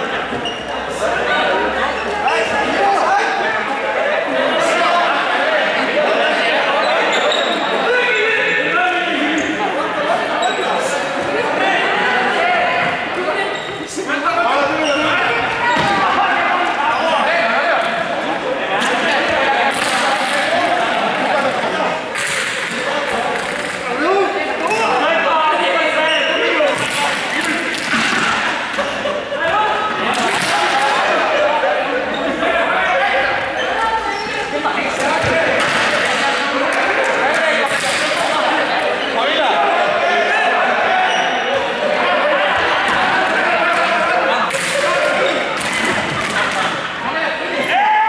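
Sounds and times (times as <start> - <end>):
young voices talking and calling: 0.0 - 48.0
thumps in hall: 35.0 - 36.4.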